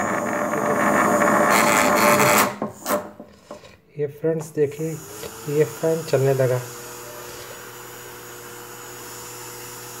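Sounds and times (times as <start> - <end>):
small electric motor whining: 5.0 - 10.0.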